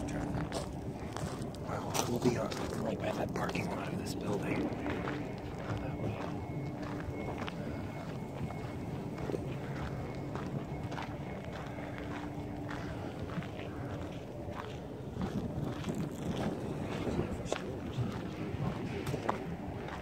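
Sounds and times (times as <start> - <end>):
faint steady hum: 0.0 - 20.0
footsteps on gravel path: 0.0 - 20.0.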